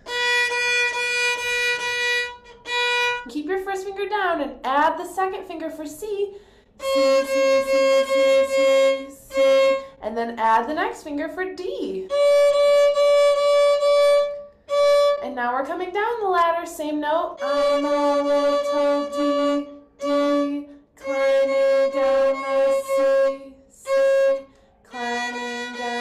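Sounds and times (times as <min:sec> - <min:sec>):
violin bowing a steady note: 0:00.0 - 0:03.3, 0:06.8 - 0:10.0, 0:12.1 - 0:15.2, 0:17.3 - 0:26.0.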